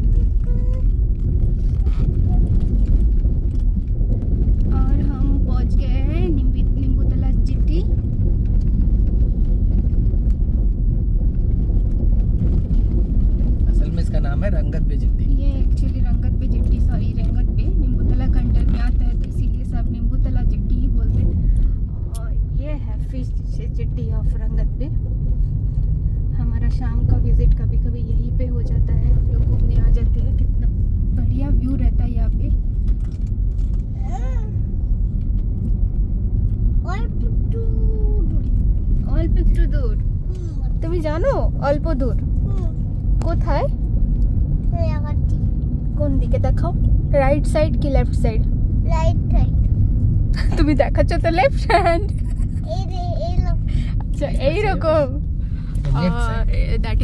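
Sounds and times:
car engine rumble: 0.0s - 57.0s
tyre noise on road: 0.0s - 57.0s.

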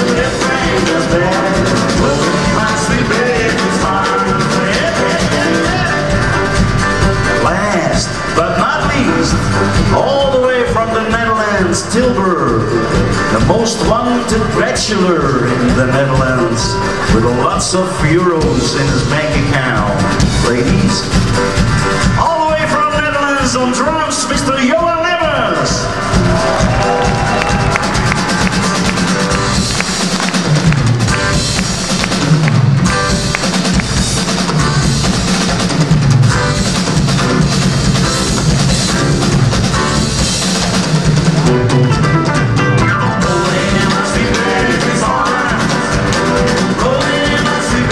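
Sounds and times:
man singing: 0.0s - 6.3s, 7.4s - 21.0s, 43.0s - 47.9s
country band playing: 0.0s - 47.9s
drum kit solo: 0.0s - 47.9s.

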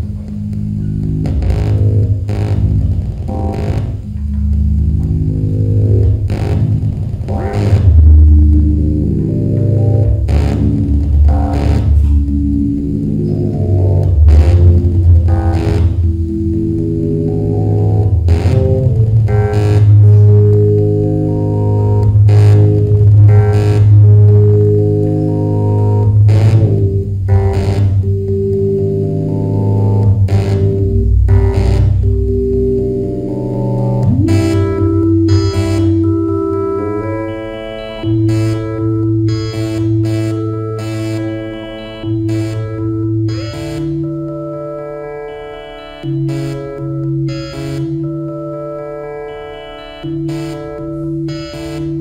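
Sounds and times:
buzzy synthesizer bass drone: 0.0s - 52.0s
shifting electronic tones: 0.0s - 52.0s.

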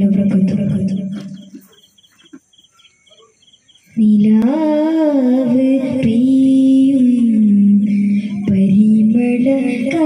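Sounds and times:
crickets chirping: 0.8s - 5.2s.

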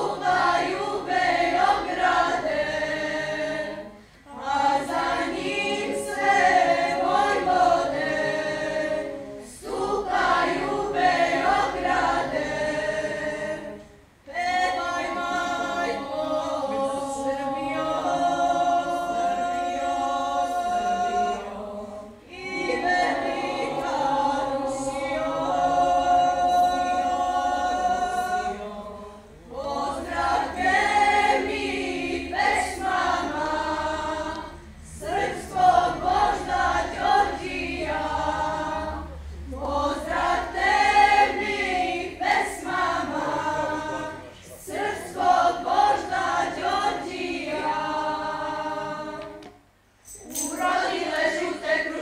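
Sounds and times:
girls' choir singing a cappella: 0.0s - 52.0s.

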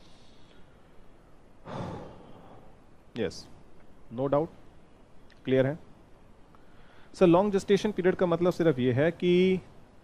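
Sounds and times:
man exhaling breathily: 1.6s - 2.8s.

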